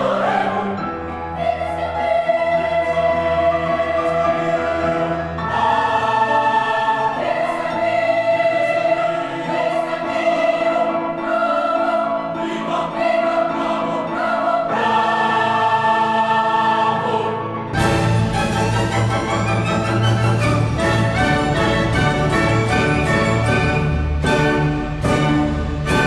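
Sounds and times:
children's choir singing: 0.0s - 26.0s.

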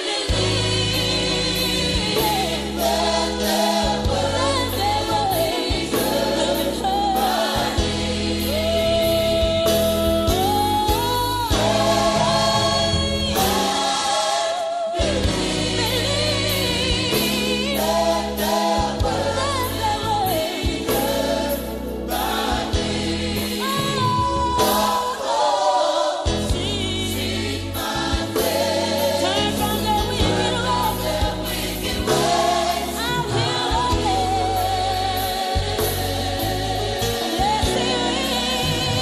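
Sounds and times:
gospel choir singing with backing: 0.0s - 39.0s.

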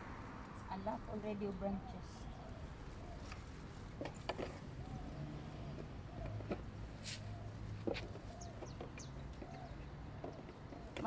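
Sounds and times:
leaves rustling: 0.4s - 5.6s.

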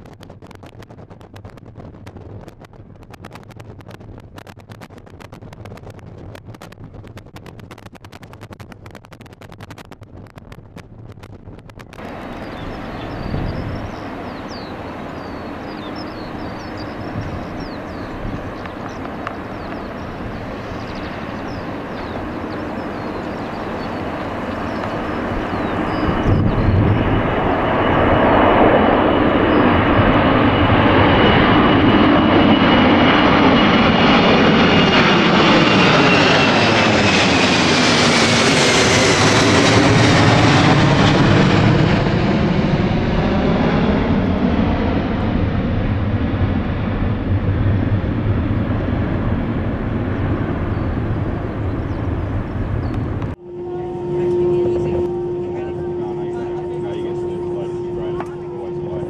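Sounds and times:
jet engines roaring overhead: 0.0s - 59.0s
steady hum: 46.0s - 59.0s.

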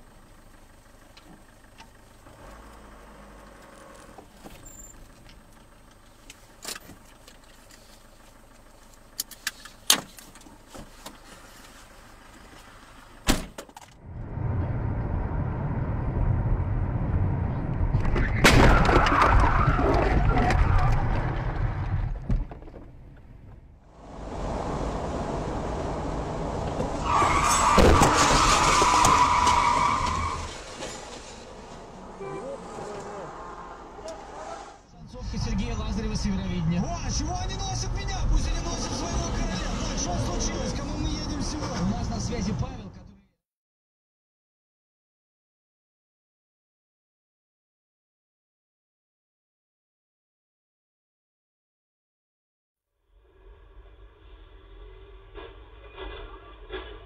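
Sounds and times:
loud road noise: 23.8s - 34.9s, 37.0s - 42.9s.

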